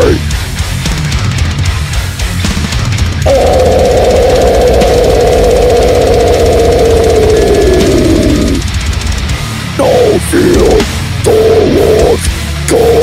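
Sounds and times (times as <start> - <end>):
death metal growl: 0.0 - 0.7, 3.0 - 13.0
death metal backing track: 0.0 - 13.0.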